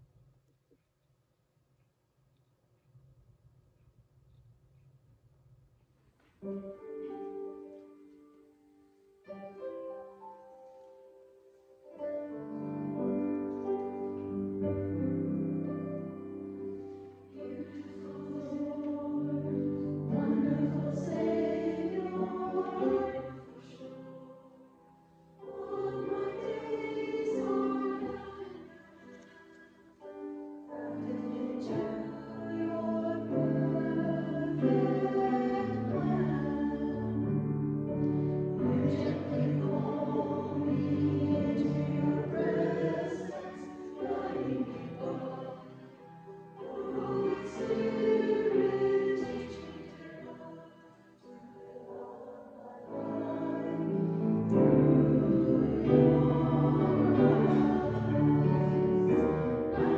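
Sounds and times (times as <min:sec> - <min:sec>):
choir singing worship song: 0:12.4 - 0:59.9.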